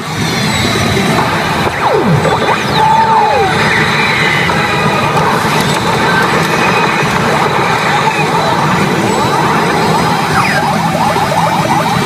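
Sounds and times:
pachinko machine music and effects: 0.0s - 12.0s.

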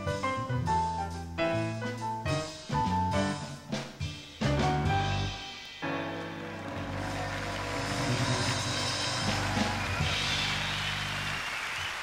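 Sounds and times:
jazz group playing: 0.0s - 11.4s.

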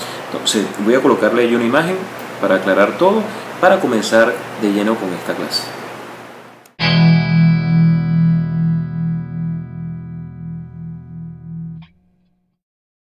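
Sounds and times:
distorted guitar chord: 6.8s - 12.6s.

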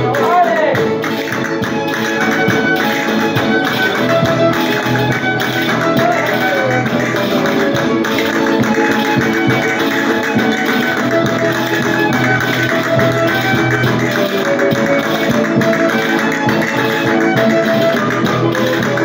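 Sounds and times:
acoustic guitar strumming: 0.0s - 19.0s
violin melody: 0.0s - 19.0s.

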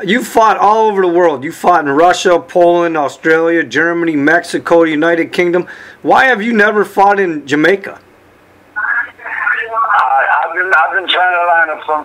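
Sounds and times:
man speaking over telephone: 8.8s - 12.0s.

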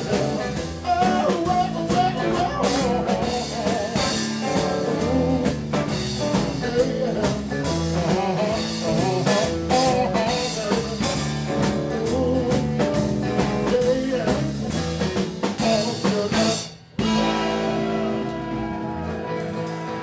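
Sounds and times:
live blues band playing: 0.0s - 20.0s.

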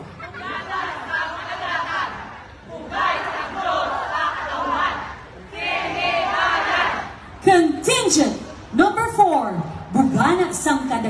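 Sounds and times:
crowd chattering and shouting: 0.0s - 11.0s.

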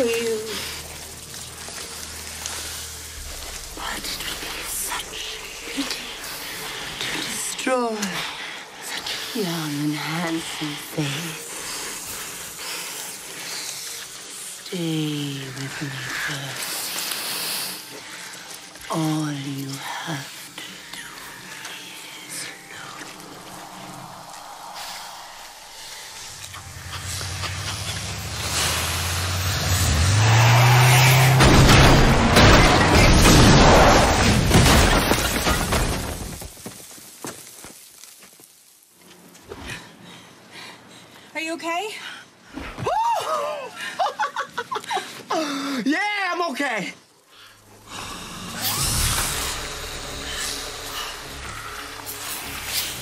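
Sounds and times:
snakes hissing: 0.0s - 34.6s, 47.2s - 53.0s
faint low drone: 20.6s - 33.5s, 47.6s - 53.0s.

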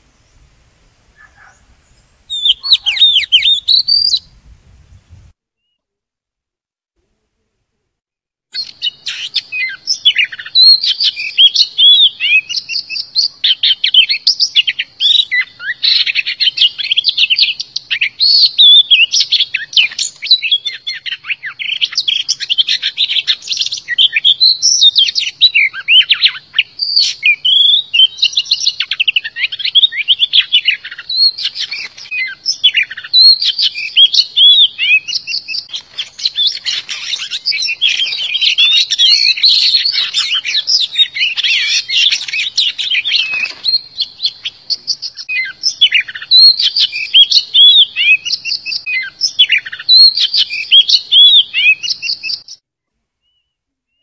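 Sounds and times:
bird singing whistles and trills: 1.2s - 5.8s, 8.6s - 52.6s, 53.2s - 54.0s.

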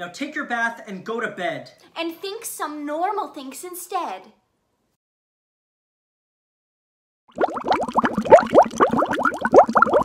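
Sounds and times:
bathwater bubbling and gurgling: 7.3s - 10.0s.

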